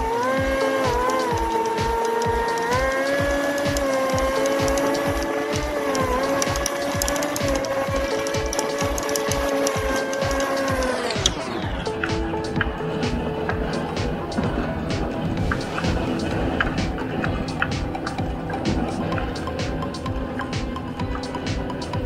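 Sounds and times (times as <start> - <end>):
music with a steady beat: 0.0 - 22.0
outboard jet motor running: 0.0 - 22.0.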